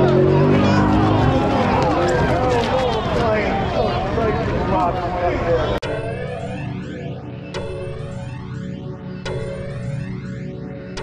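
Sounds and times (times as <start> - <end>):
men shouting: 0.0 - 5.8
footsteps on asphalt: 0.8 - 5.0.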